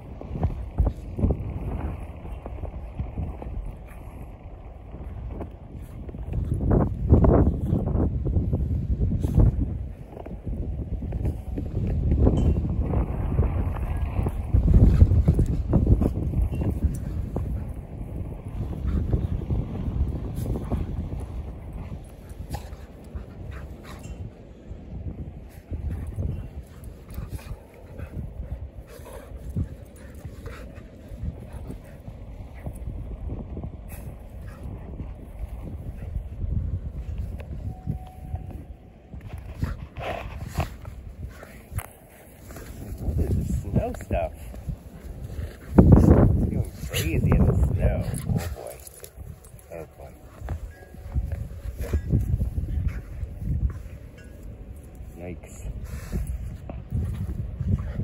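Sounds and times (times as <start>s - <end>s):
dogs play-fighting: 0.0s - 58.0s
wind rumble on microphone: 0.0s - 58.0s.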